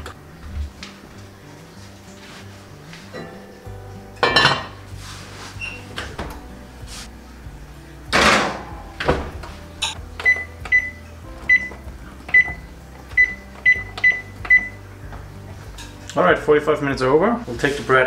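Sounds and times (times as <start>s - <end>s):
oven door shutting: 5.6s - 6.5s, 8.1s - 10.9s
short high keypad beeps: 10.2s - 12.6s, 13.2s - 14.8s.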